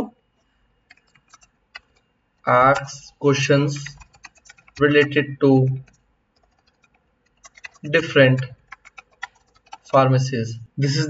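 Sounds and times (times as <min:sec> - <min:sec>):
keyboard key clicks: 0:03.8 - 0:04.9, 0:05.8 - 0:10.0.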